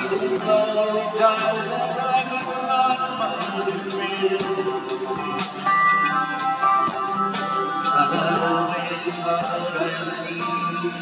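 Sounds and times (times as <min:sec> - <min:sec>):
band backing: 0:00.0 - 0:11.0.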